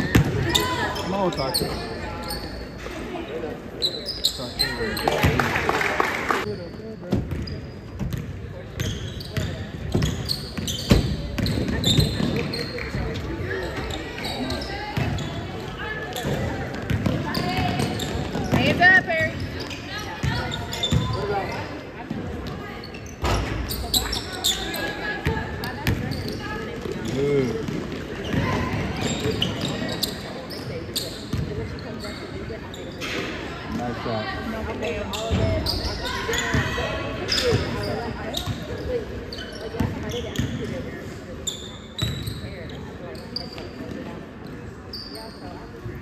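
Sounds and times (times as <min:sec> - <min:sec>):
indistinct voices in echoing hall: 0:00.0 - 0:46.0.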